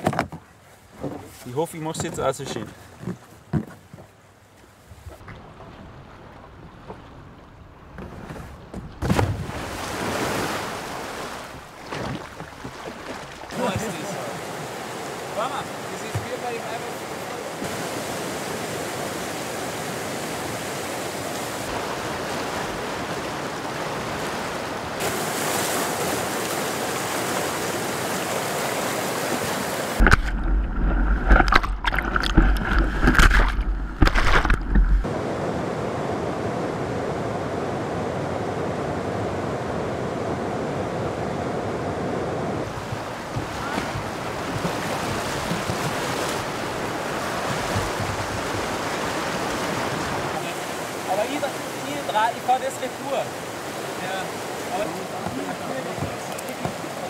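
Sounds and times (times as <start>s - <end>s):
water splashing and buffeting: 0.0s - 57.0s
river rushing: 9.4s - 57.0s.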